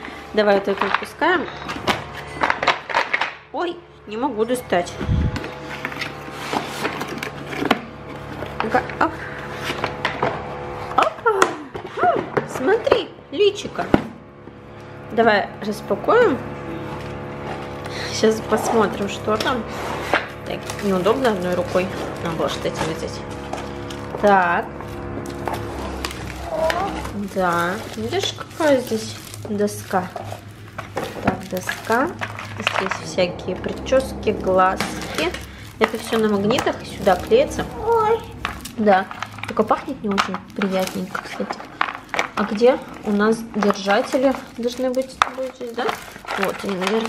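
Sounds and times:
soft background music: 20.4s - 41.0s.

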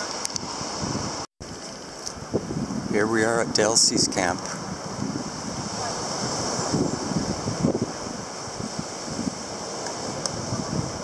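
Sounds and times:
surf hissing on beach: 0.0s - 11.0s
wind buffeting microphone: 0.2s - 11.0s.

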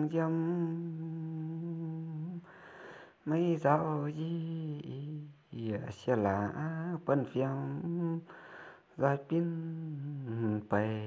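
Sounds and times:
person singing a long note: 0.0s - 2.4s
soft breath: 2.4s - 3.3s, 8.2s - 9.0s.

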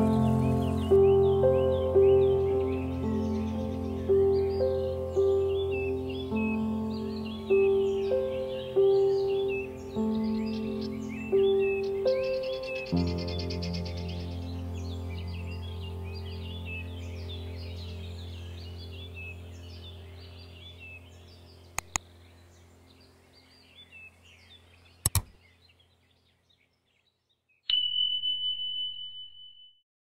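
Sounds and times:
soft music: 0.0s - 23.2s
birds chirping: 0.0s - 28.6s
double clicks: 21.8s - 22.1s, 25.0s - 25.4s
notification bell ding: 27.7s - 29.6s.

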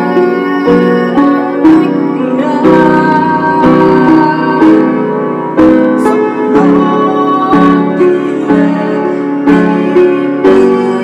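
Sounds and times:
keyboard playing slow chords: 0.0s - 11.0s.

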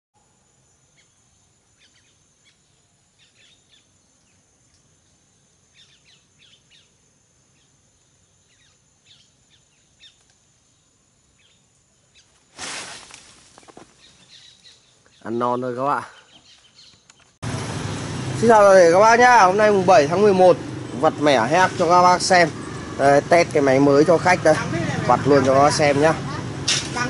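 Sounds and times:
small birds chirping: 0.7s - 17.4s
loud rustling burst: 12.5s - 14.2s.

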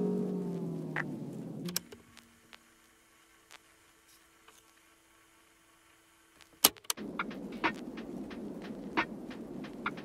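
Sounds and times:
lo-fi background music: 0.0s - 2.7s, 6.8s - 10.0s
steady hum: 0.0s - 10.0s.

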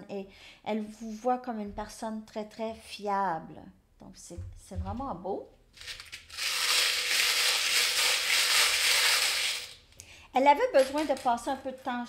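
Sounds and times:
paper slips and charms stirred: 5.8s - 9.8s.

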